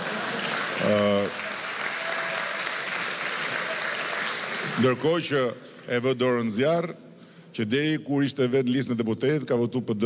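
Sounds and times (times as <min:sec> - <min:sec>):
audience applauding: 0:00.0 - 0:05.9.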